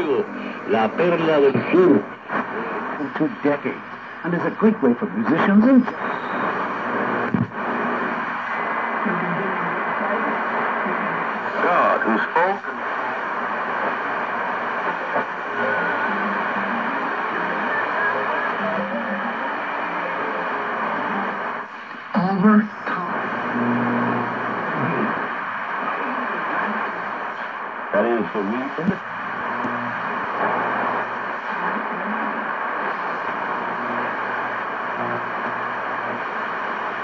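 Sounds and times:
radio music: 0.0s - 37.0s
radio static hiss: 0.0s - 37.0s
weak radio voices: 0.0s - 37.0s
radio whistles sweeping in pitch: 6.0s - 6.6s.

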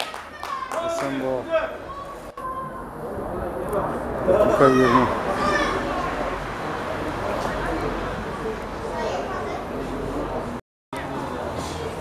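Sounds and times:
general chatter: 0.0s - 12.0s
young people shouting: 4.4s - 6.1s.

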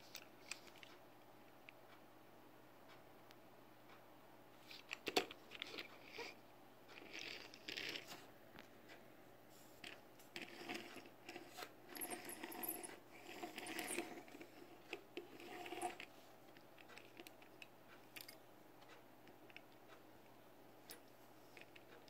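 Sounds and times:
toy metal truck clicks and scrapes: 6.9s - 8.2s, 9.8s - 16.1s.

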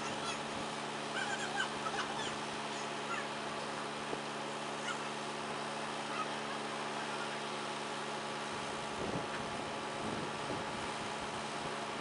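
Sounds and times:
farm machinery engine idling: 0.0s - 12.0s.

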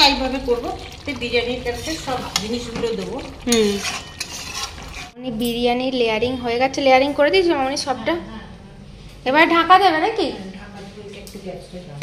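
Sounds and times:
spoon scraping a metal pan: 1.7s - 5.2s.

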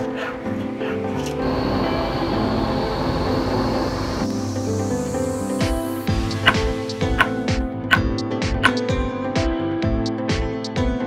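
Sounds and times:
blowtorch flame rushing: 0.7s - 7.5s
thin high whistle: 1.4s - 6.6s.

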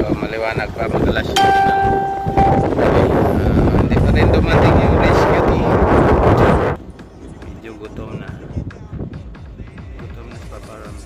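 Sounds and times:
wind buffeting microphone: 0.0s - 1.4s, 2.4s - 10.2s
ringing bell-like tone: 1.3s - 3.1s.

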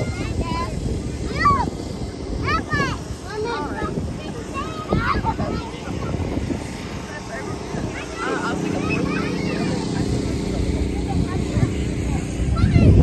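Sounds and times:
children's voices and chatter: 0.0s - 13.0s
electric blower humming: 0.2s - 13.0s.

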